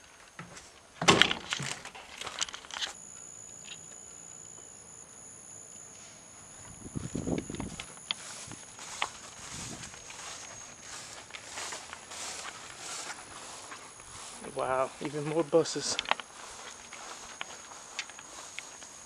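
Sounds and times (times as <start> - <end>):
rustle: 0.0 - 19.0
insects calling: 1.2 - 19.0
footsteps in grass: 6.1 - 19.0.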